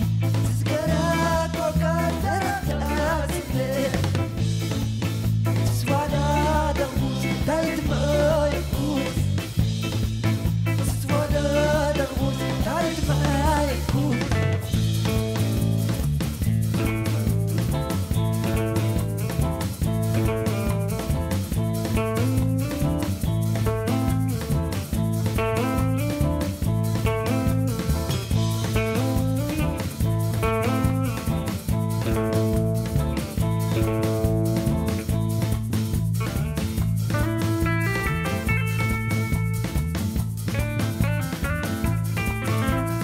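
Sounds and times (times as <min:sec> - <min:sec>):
bass guitar: 0:00.0 - 0:43.0
drum kit steady beat: 0:00.0 - 0:43.0
electric guitar riff: 0:00.0 - 0:43.0
person singing: 0:00.4 - 0:04.4, 0:05.6 - 0:09.6, 0:10.8 - 0:14.7.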